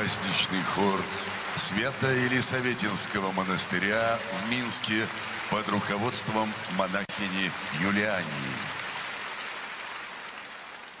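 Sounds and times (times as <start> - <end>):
large audience applauding: 0.0 - 11.0.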